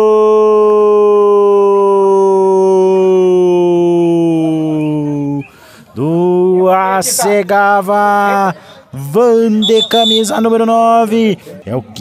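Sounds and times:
man shouting goal: 9.2s - 11.1s.

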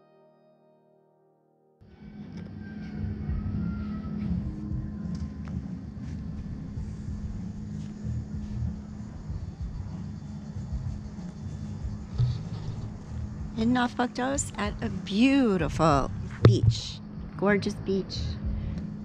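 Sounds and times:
constant low hum: 1.8s - 19.0s
steady low rumble: 1.9s - 19.0s.

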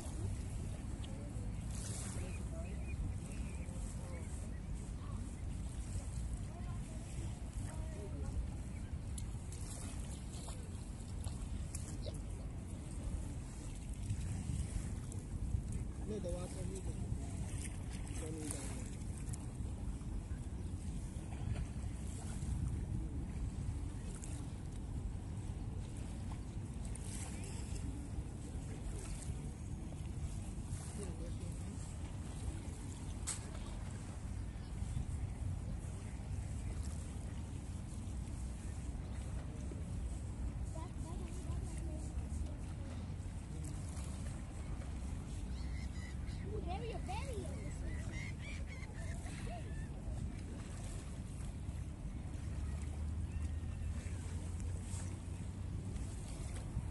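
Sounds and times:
motorboat engine rumbling: 0.0s - 56.9s
wind buffeting microphone: 0.0s - 56.9s.

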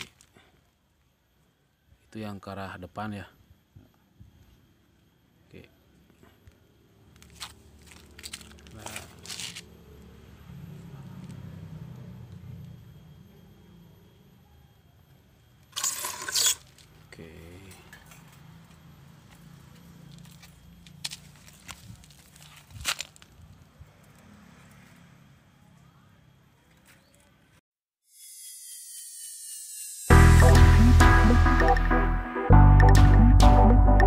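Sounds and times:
leaves rustling: 7.2s - 9.8s, 20.2s - 23.8s.

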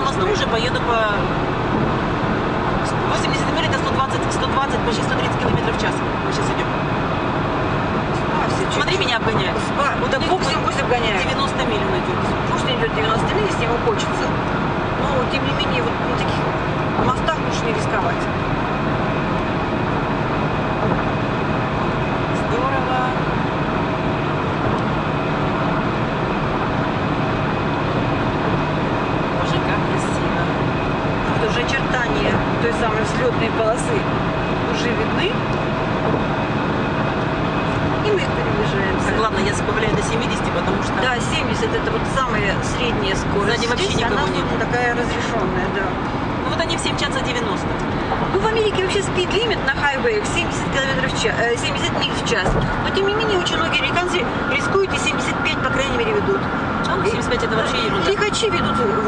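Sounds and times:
constant hum: 0.0s - 59.0s
road and engine noise in car: 0.0s - 59.0s.

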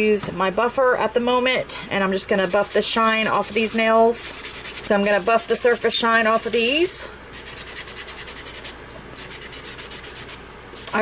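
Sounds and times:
nail buffer scratching nails: 2.4s - 11.0s.

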